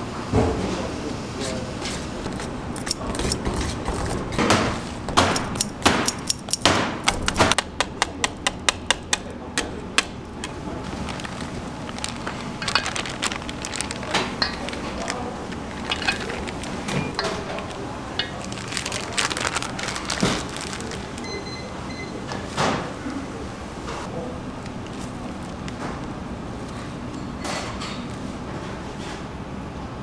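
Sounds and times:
whisk wires clinking on bowl: 12.6 - 18.9.

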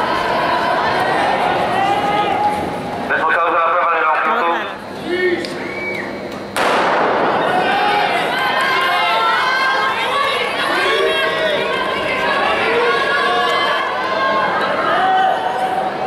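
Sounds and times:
spectators shouting and cheering: 0.0 - 4.1, 7.3 - 16.0.

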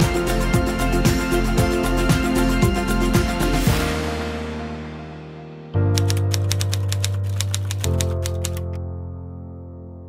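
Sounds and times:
music with low sustained chord: 0.0 - 10.0
typewriter key clicks: 6.0 - 8.8.

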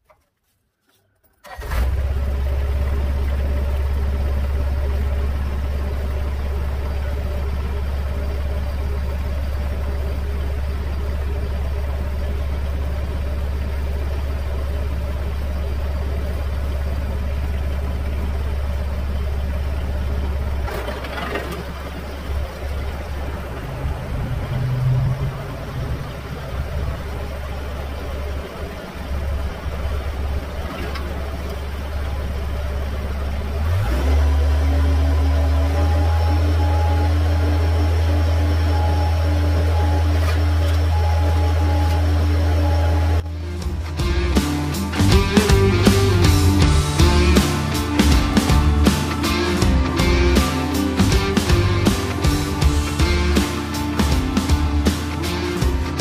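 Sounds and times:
wood chipper running: 1.4 - 56.0.

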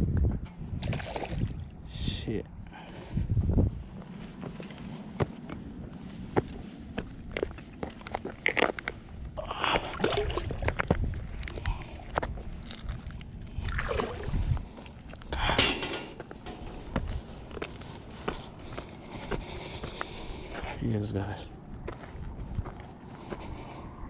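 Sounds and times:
footsteps on concrete: 3.4 - 9.2, 16.2 - 20.8, 21.8 - 23.8.

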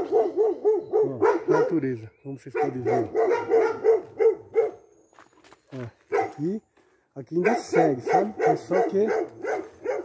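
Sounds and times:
dog barking: 0.0 - 1.9, 2.5 - 4.9, 6.1 - 6.4, 7.4 - 10.0.

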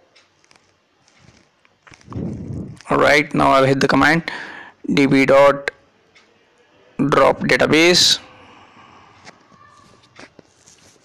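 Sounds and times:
man speaking: 2.8 - 5.8, 7.0 - 8.3.

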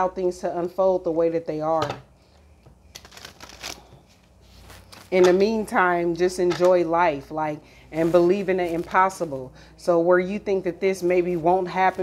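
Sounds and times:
cards rustling and clicking: 3.0 - 3.9.

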